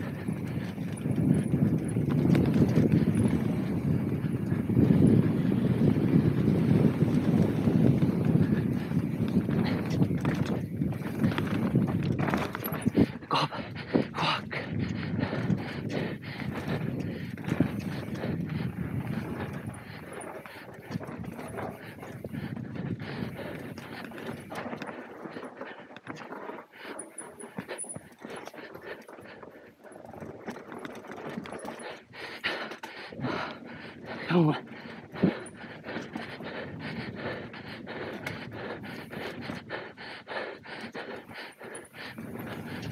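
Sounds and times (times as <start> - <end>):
bike clattering over bumps: 0.0 - 13.3
bike tyres on dirt: 0.0 - 42.9
rider breathing hard: 0.0 - 42.9
wind rumbling on microphone: 0.0 - 42.9.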